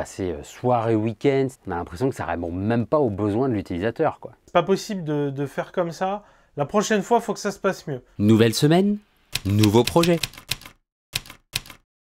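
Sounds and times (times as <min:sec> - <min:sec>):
typewriter keys clacking: 0:09.4 - 0:11.8.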